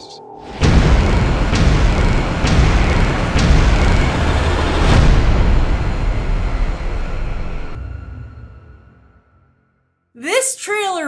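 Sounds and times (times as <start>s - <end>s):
deep rumble: 0.5s - 8.6s.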